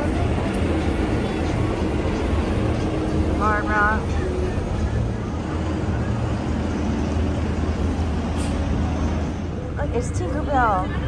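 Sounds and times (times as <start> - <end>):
bus engine humming: 0.0 - 11.0
road traffic noise: 0.0 - 11.0.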